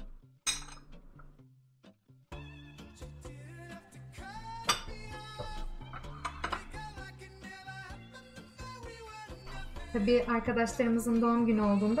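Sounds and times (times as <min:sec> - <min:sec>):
knife clinking on ceramic plate: 0:00.5 - 0:00.9, 0:04.7 - 0:05.1, 0:06.0 - 0:06.8.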